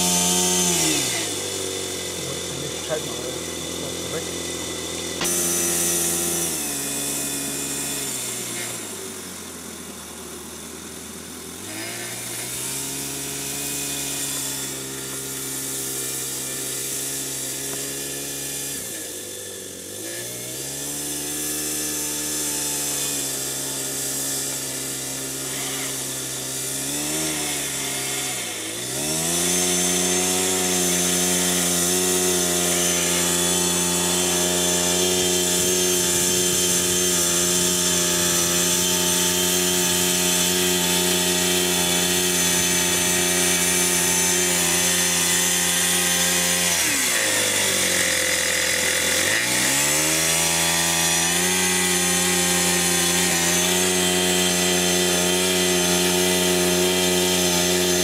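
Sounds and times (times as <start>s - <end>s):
blade pushing sand: 0.0s - 9.9s, 20.0s - 58.0s
small model engine running: 0.0s - 58.0s.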